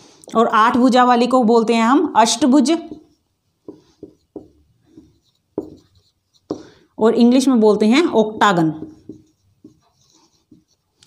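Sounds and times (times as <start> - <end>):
marker pen writing on whiteboard: 2.3 - 11.0.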